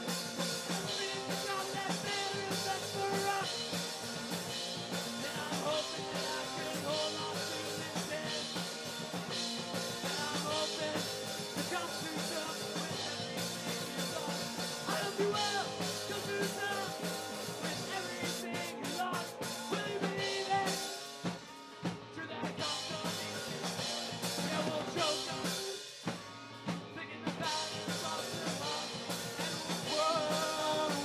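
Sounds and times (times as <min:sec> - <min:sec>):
person singing: 0:00.0 - 0:21.4, 0:22.0 - 0:25.8, 0:26.7 - 0:31.0
rock band playing live: 0:00.0 - 0:31.0.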